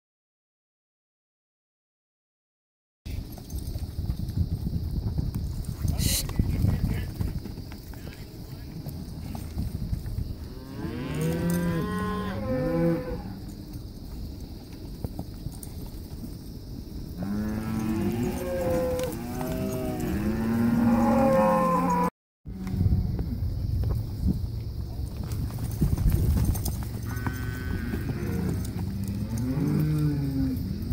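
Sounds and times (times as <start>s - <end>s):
cattle mooing: 10.6s - 13.4s, 17.2s - 22.7s, 27.0s - 30.6s.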